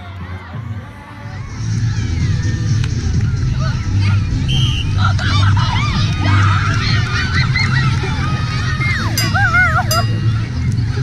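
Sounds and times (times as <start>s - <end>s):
children cheering and shrieking: 0.0s - 11.0s.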